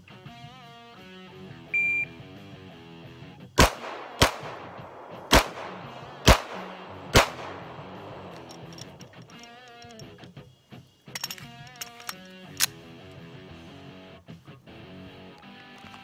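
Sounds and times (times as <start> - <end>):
guitar background music: 0.0 - 16.0
shot timer beep: 1.8 - 2.1
pistol shots: 3.6 - 9.0.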